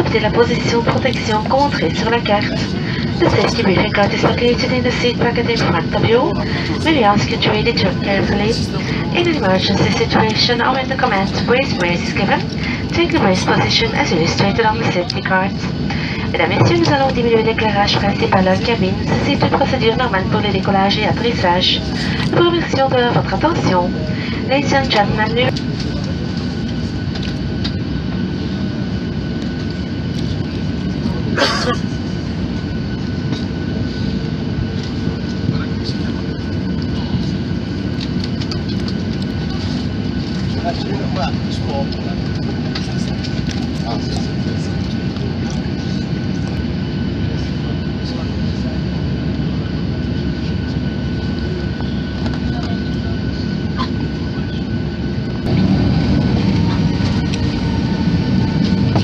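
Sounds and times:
airliner engines and cabin hum: 0:00.0 - 0:59.0.

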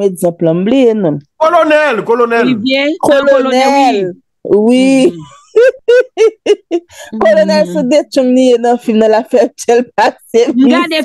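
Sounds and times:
woman laughing high-pitched: 0:04.9 - 0:07.8.

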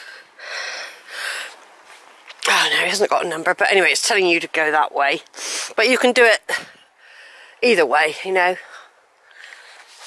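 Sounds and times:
woman breathing quickly: 0:00.0 - 0:01.6, 0:06.5 - 0:07.6.

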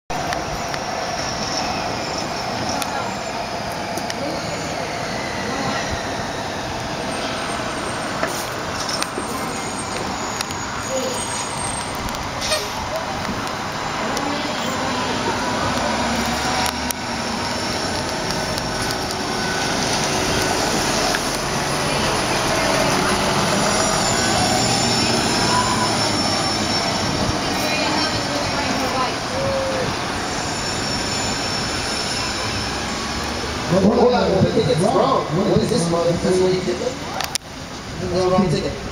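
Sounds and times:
city bus driving past: 0:00.1 - 0:38.9
street traffic: 0:00.1 - 0:38.9.

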